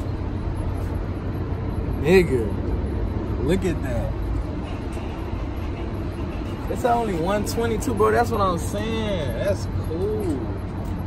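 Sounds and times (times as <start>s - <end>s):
low city background rumble: 0.0s - 11.0s.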